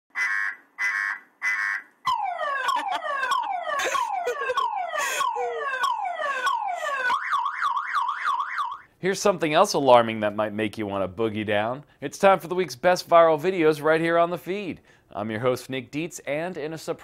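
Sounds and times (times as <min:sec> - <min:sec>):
car alarm: 0:00.1 - 0:08.9.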